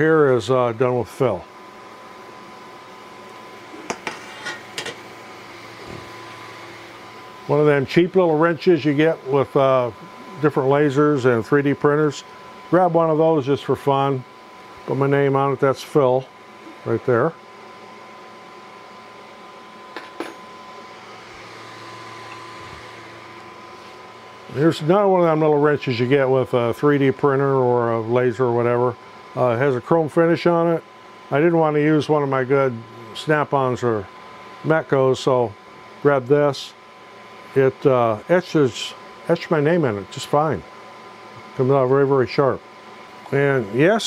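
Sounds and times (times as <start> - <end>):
faint high whine: 0.0 - 36.8
steady background hum: 0.0 - 44.0.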